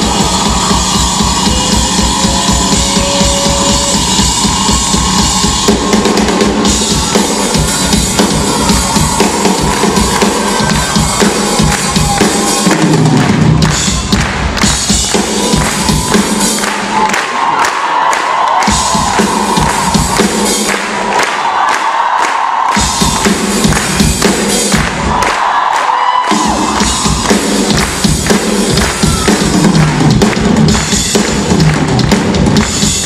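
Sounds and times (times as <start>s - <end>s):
drum kit played live: 0.0s - 17.6s, 18.3s - 21.5s, 22.7s - 25.4s, 26.3s - 33.0s
crowd cheering: 0.0s - 33.0s.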